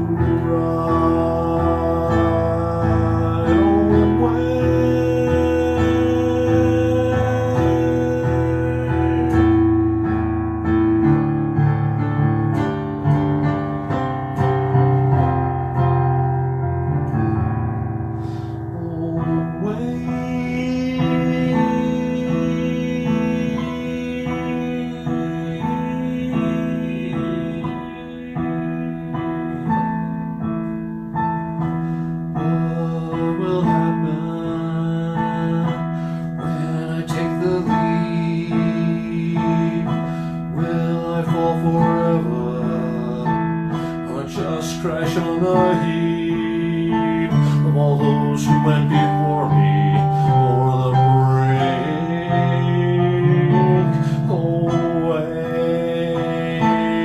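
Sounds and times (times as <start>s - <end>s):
electronic keyboard chords: 0.0s - 57.0s
man singing: 0.0s - 57.0s.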